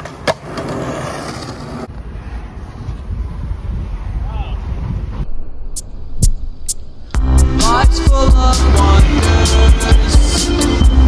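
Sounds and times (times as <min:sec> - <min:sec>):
skateboard wheels rolling on concrete: 0:00.0 - 0:05.3.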